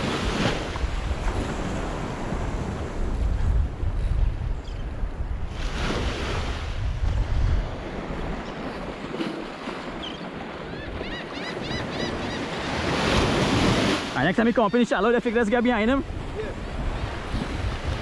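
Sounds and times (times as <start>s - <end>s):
wind buffeting microphone: 0.0s - 12.1s, 12.7s - 18.0s
small waves breaking on beach: 0.0s - 18.0s.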